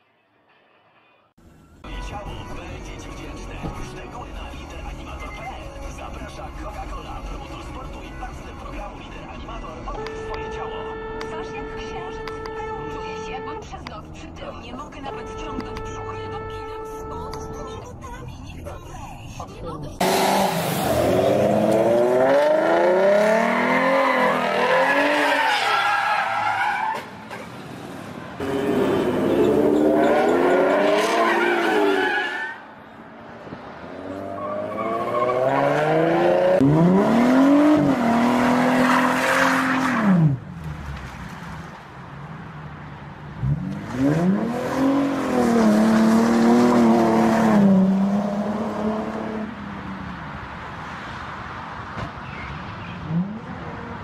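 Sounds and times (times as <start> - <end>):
car engines revving hard: 20.0 - 32.2, 33.4 - 54.0
tyres squealing and skidding: 20.0 - 33.0, 33.9 - 41.6.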